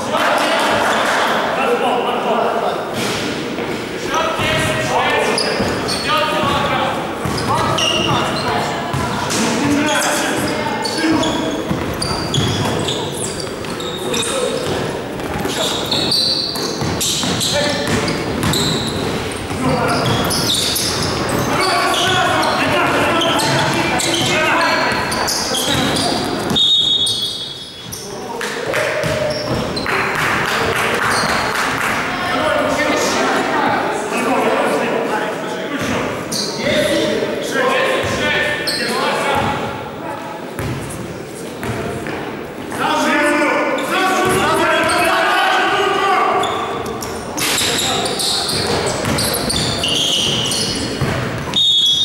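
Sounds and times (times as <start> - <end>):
players' voices echoing: 0.0 - 52.0
basketball bouncing: 5.5 - 9.4, 11.2 - 13.9, 14.6 - 26.6, 28.6 - 31.9, 40.6 - 40.8, 48.5 - 51.6.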